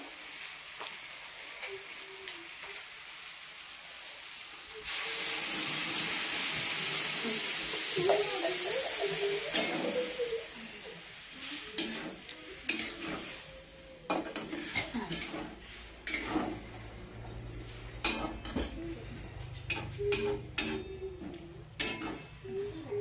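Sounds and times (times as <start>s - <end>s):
vegetables sizzling in a pan: 0.0s - 23.0s.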